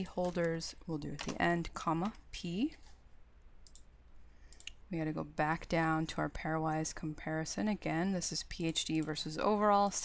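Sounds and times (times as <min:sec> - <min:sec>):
low steady hum: 0:00.0 - 0:10.0
computer mouse clicks: 0:03.6 - 0:04.8.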